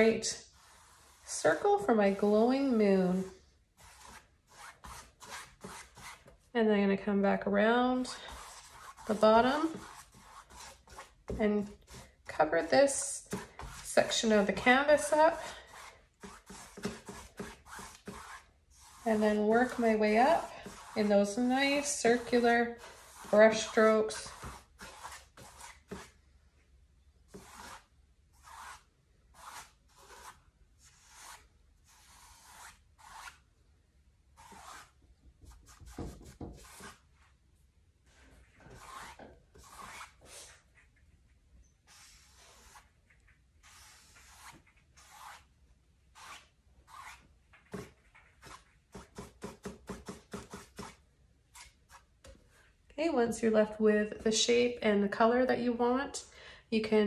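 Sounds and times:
brush scrubbing on canvas: 0.0s - 2.3s, 3.1s - 6.3s, 8.0s - 11.2s, 13.4s - 26.2s, 27.3s - 33.4s, 34.4s - 37.3s, 38.1s - 41.0s, 41.9s - 45.5s.

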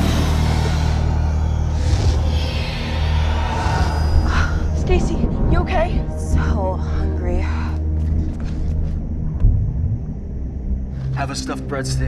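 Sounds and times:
low rumble: 0.0s - 11.2s.

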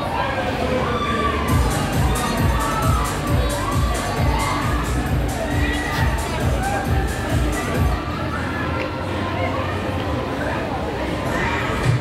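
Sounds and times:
riders screaming and shouting: 0.0s - 7.8s
loud dance music: 1.4s - 8.0s.

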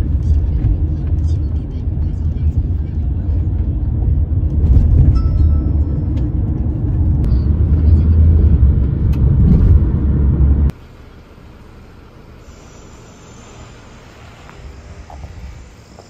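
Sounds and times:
car cabin road rumble: 0.0s - 16.0s
faint outdoor background: 10.7s - 16.0s.

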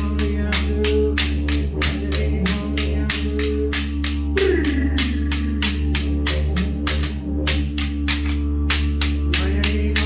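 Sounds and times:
didgeridoo drone: 0.0s - 10.0s
wooden boomerangs clacking: 0.0s - 10.0s.

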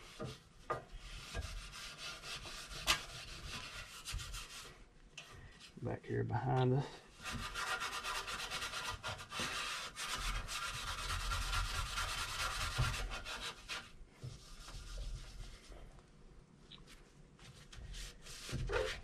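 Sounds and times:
steel wool scrubbing metal: 1.0s - 4.8s.

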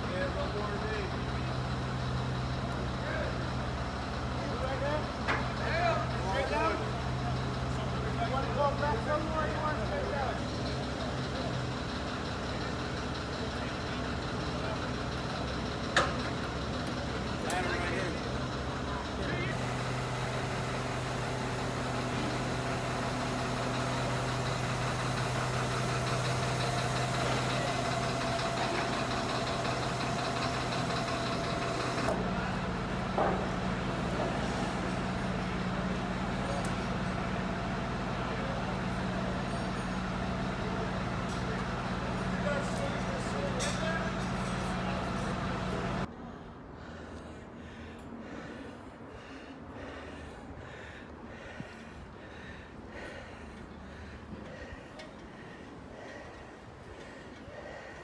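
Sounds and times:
voices calling out: 0.0s - 46.1s
diesel engine running: 0.0s - 58.0s.

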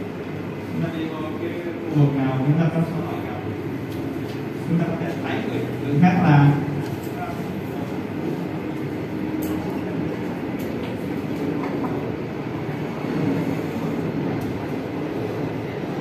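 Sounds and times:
low room rumble: 0.0s - 16.0s.

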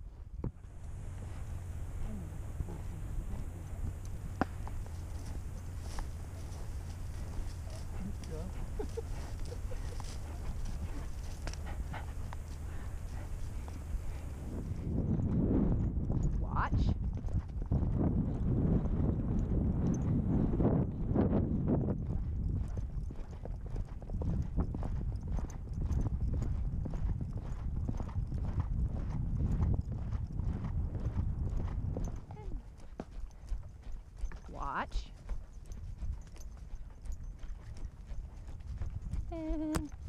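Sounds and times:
horse hoofbeats on sand: 0.0s - 40.0s.

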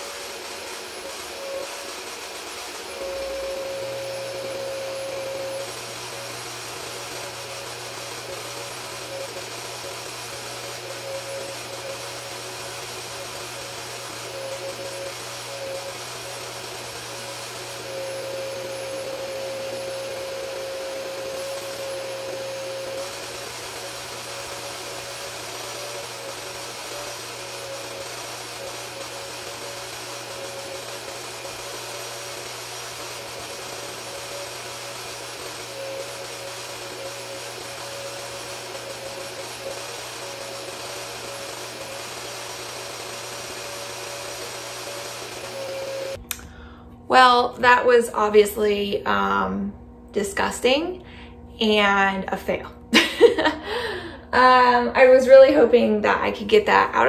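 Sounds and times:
carpet cleaner motor whine: 0.0s - 57.0s.

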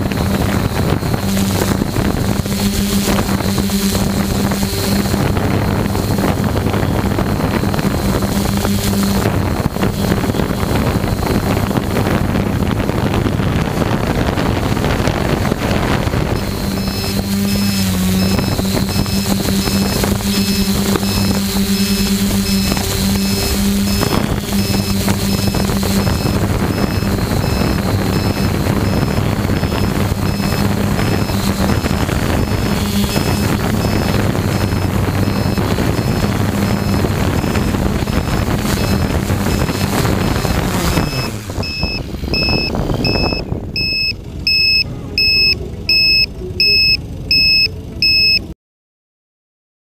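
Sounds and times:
high two-tone warning beep: 0.0s - 11.8s, 16.2s - 48.5s
drone propellers humming: 0.0s - 48.5s.

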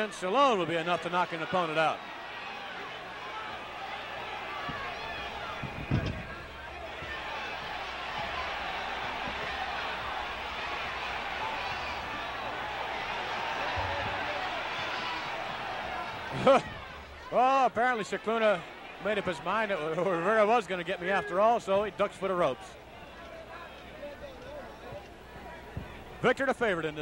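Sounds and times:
arena crowd talking and calling: 0.0s - 27.0s
heavy thump: 5.5s - 7.2s.

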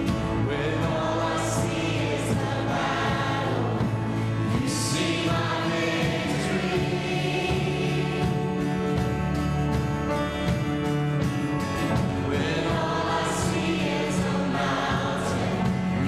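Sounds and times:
choir singing a hymn: 0.0s - 9.3s, 11.8s - 16.0s
instrumental accompaniment: 0.0s - 16.0s.

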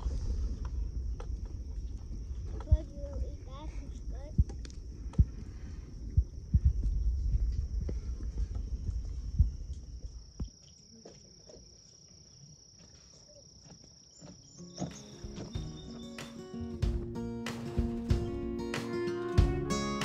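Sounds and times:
low rumble: 0.0s - 10.2s.

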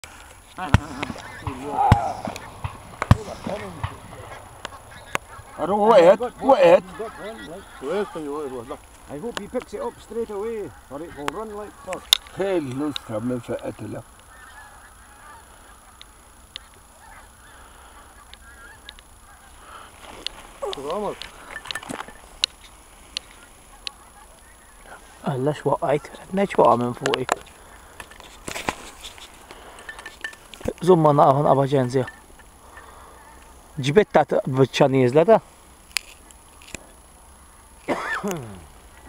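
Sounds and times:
wild geese calling: 0.0s - 39.0s
man laughing: 3.2s - 8.8s, 37.9s - 38.7s.

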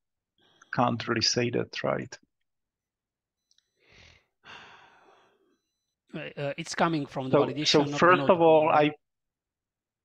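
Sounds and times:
soft breaths: 3.6s - 5.9s.

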